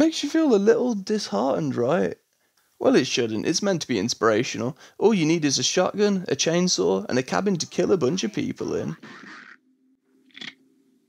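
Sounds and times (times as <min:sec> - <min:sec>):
soft hiss: 0:00.0 - 0:09.0
short raspy croak: 0:10.3 - 0:10.6.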